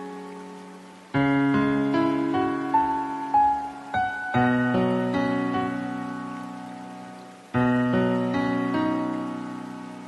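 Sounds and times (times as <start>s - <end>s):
slow soft piano music: 0.0s - 10.0s.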